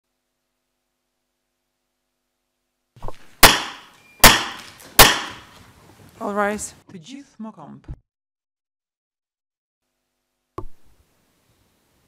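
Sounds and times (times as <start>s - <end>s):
loud sharp knocks echoing: 3.4s - 5.6s.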